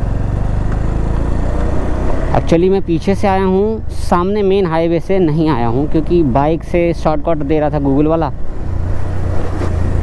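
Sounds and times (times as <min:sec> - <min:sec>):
motorcycle engine running: 0:00.0 - 0:06.9
road noise: 0:00.0 - 0:10.0.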